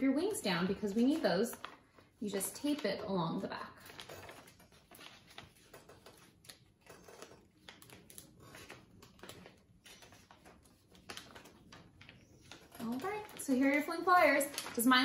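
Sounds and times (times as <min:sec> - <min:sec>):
paper rustling and crinkling: 0:00.2 - 0:15.0.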